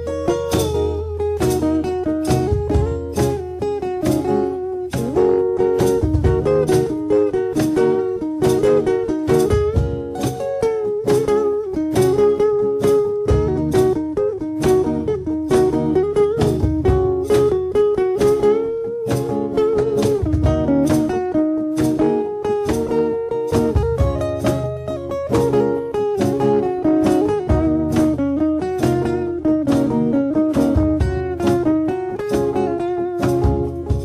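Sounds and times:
solo electric guitar picking: 0.0 - 34.0.

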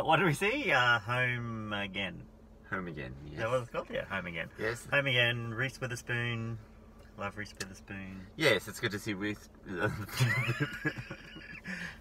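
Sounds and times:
man laughing: 9.7 - 12.0.

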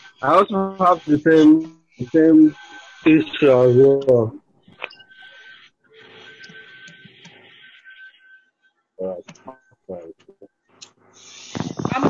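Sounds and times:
thin steady high tone: 0.0 - 4.3
background hiss: 10.8 - 12.0.

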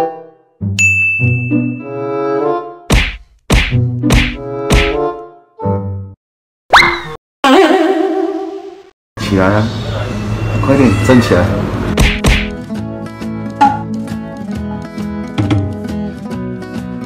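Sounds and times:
bright ding: 0.8 - 1.9
sharp whacks: 2.9 - 5.0, 12.0 - 12.6.

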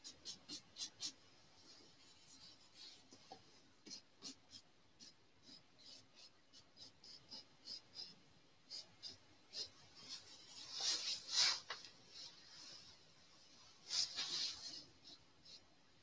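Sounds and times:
paintbrush scratching on canvas: 0.0 - 12.8, 13.8 - 15.7.

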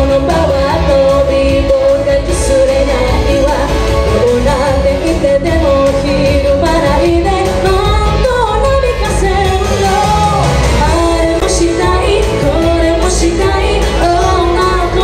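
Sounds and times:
backing music: 0.0 - 15.0
woman singing into a microphone: 0.0 - 15.0.

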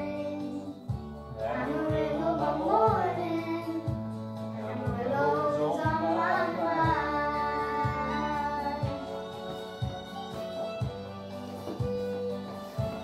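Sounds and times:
instrumental accompaniment: 0.0 - 13.0
girls singing country song: 1.4 - 9.1.

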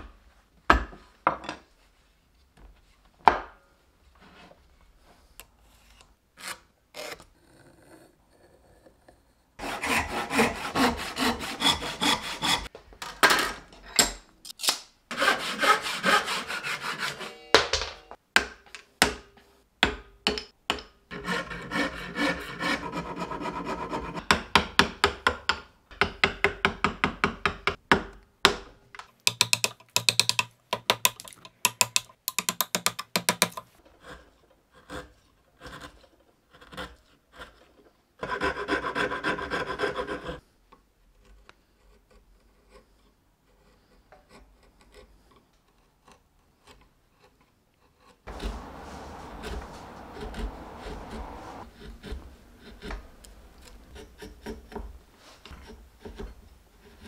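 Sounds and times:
hand saw cutting wood: 9.6 - 12.7, 15.1 - 17.5, 21.1 - 24.3, 33.3 - 40.4, 47.3 - 57.0
rasp filing wood: 9.6 - 12.7, 15.1 - 17.4, 21.1 - 24.2, 34.0 - 40.4, 47.2 - 57.0
chisel chopping wood: 29.3 - 33.7.

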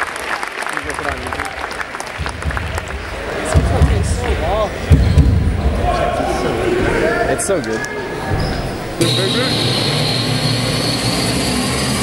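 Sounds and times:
voices in a hall: 0.0 - 12.0
basketball bouncing: 2.2 - 5.8.

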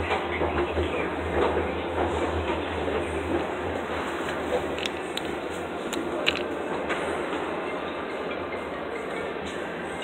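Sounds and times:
noisy hubbub: 0.0 - 10.0.

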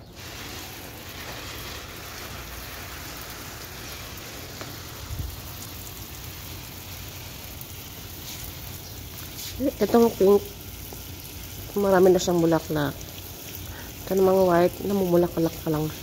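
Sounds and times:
hose spraying water on plants: 0.0 - 16.0.

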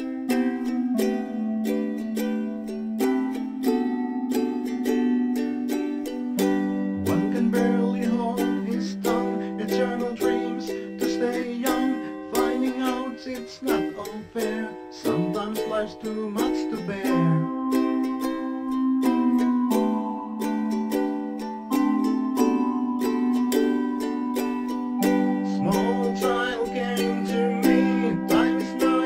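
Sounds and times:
ukulele strumming: 0.0 - 29.0.

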